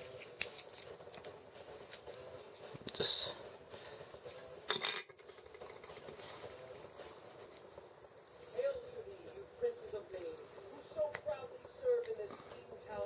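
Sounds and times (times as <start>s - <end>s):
plastic parts snipping: 0.2s - 1.3s.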